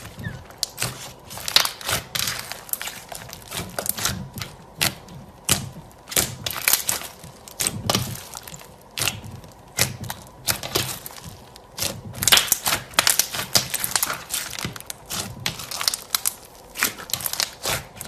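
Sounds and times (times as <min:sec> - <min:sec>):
slime clicking and crackling: 0:00.0 - 0:18.0.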